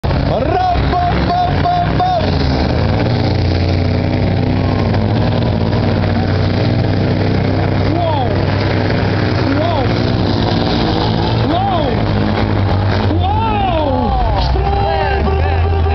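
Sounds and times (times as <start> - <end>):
diesel truck engine at high revs: 0.0 - 15.9.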